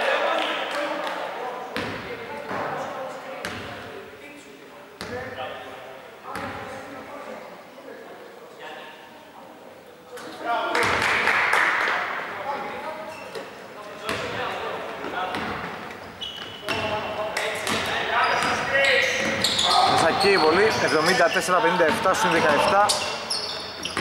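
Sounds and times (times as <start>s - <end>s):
basketball bouncing on court: 15.3s - 15.7s, 17.6s - 20.8s, 23.8s - 24.0s
players calling out: 16.2s - 24.0s.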